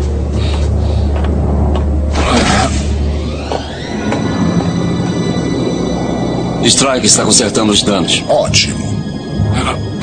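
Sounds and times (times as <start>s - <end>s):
aircraft engines rumbling: 0.0s - 10.0s.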